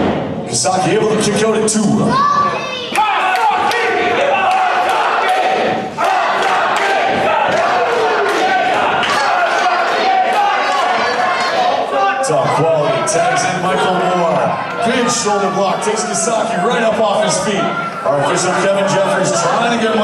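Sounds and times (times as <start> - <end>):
crowd shouting and chanting: 0.0 - 20.0.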